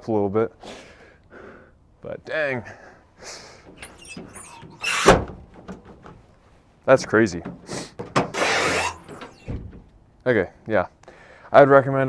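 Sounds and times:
hinges rubbing: 3.6 - 10.0
tailgate thump: 3.7 - 6.2, 7.1 - 10.0.

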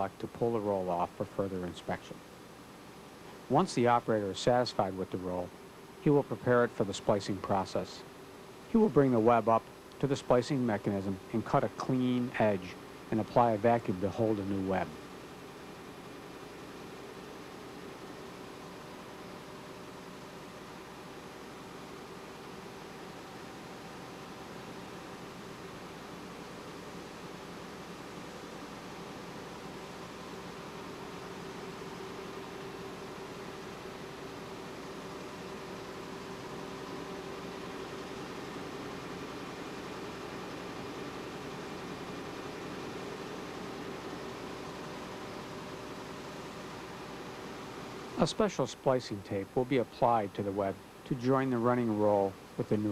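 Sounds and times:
constant low hum tone: 0.0 - 52.9
printing press drone: 0.0 - 52.9.

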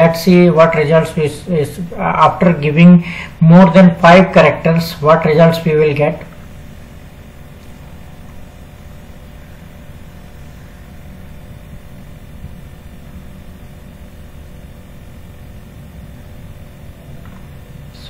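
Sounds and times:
faint electrical hum: 0.0 - 18.0.

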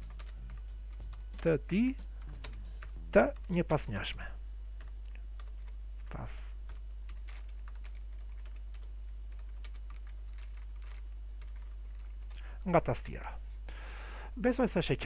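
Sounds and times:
keyboard typing: 0.0 - 12.4
steady low hum: 0.0 - 15.0.

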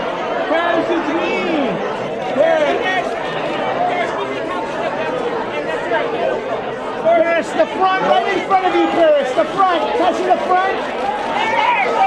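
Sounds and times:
voices talking over one another: 0.0 - 12.0.

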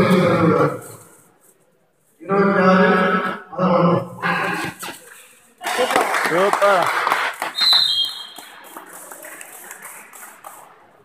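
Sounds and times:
murmur of crowd and players: 0.0 - 11.0
referee's whistle blast: 7.6 - 8.4.

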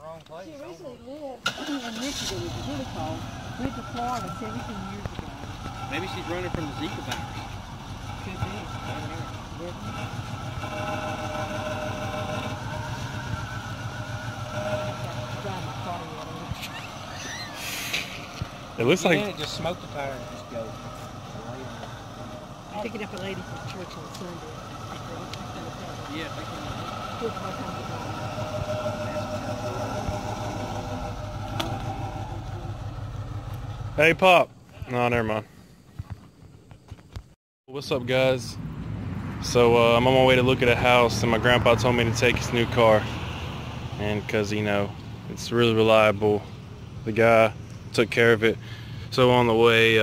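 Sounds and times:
car engine pulling away: 1.4 - 35.2, 37.8 - 50.0
brief hiss: 17.6 - 18.2.

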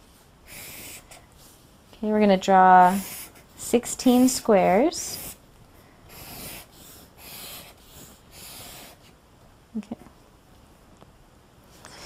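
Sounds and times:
marker rubbing on paper: 0.5 - 1.2, 2.8 - 5.4, 6.1 - 9.1.

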